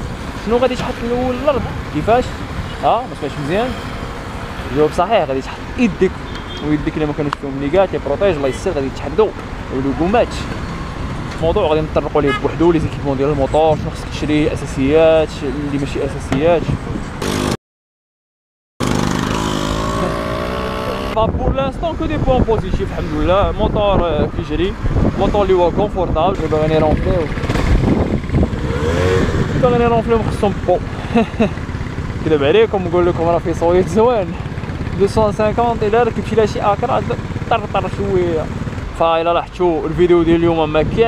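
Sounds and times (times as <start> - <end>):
man talking: 0.4 - 3.8, 4.6 - 10.5, 11.4 - 16.8, 20.0 - 27.4, 29.5 - 31.6, 32.2 - 41.0
motorcycle engine pulling away: 18.8 - 21.2, 26.4 - 38.8.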